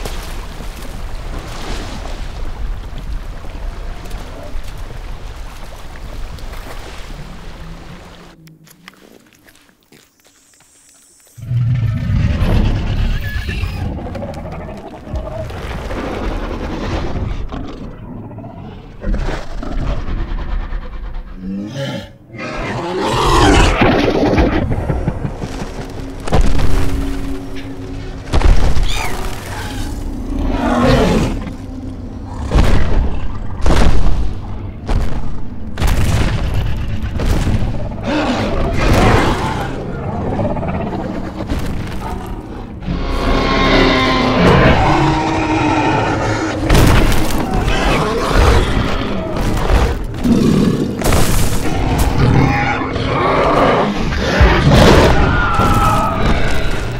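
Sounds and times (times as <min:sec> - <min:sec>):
dinosaur rumbling growls: 0:51.6 - 0:56.9.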